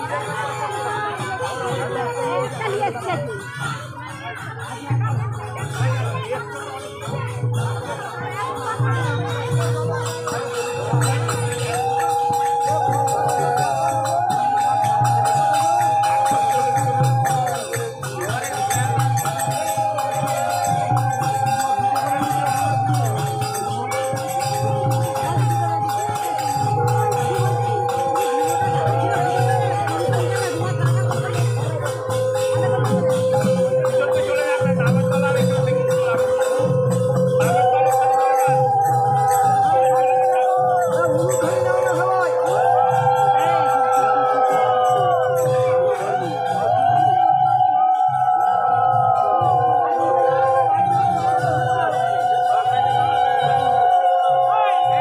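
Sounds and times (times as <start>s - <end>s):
jingling hand cymbals: 0.0s - 55.0s
low pulsing drum beat: 0.0s - 55.0s.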